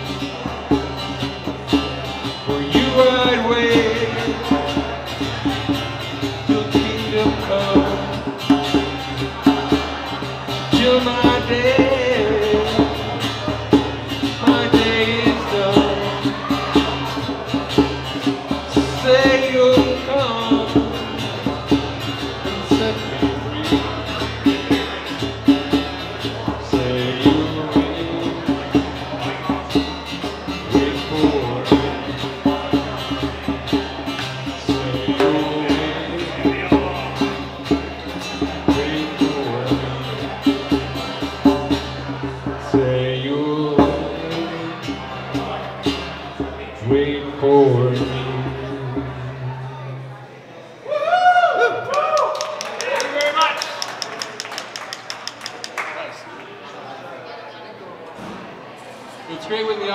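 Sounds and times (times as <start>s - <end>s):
strummed acoustic guitar: 0.0s - 50.4s
man singing: 1.8s - 17.3s, 18.5s - 24.6s, 26.3s - 33.4s, 34.2s - 50.1s.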